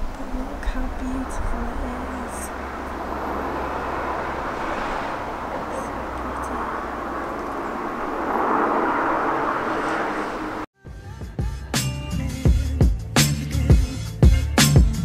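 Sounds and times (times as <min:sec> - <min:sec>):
car passing: 0:00.0 - 0:10.7
steady rushing noise: 0:00.0 - 0:10.7.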